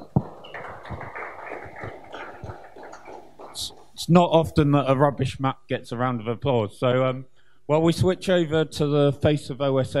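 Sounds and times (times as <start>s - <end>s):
audience applauding: 0.0s - 4.1s.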